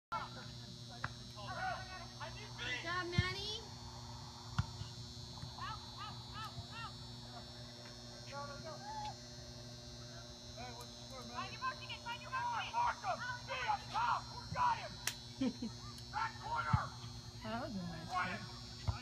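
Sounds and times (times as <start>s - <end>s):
steady low hum: 0.1s - 19.0s
players shouting: 1.4s - 3.9s, 11.4s - 15.0s, 16.0s - 17.1s.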